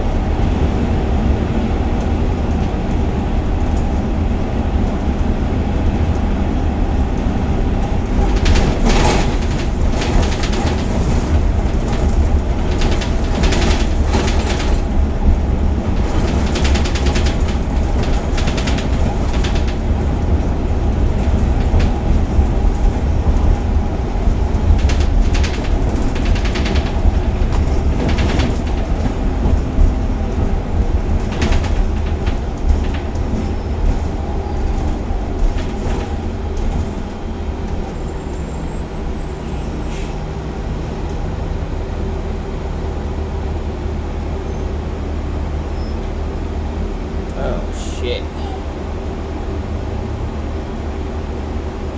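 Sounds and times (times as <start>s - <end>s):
bus engine and road rumble: 0.0s - 51.9s
rattling and clatter: 7.5s - 38.4s.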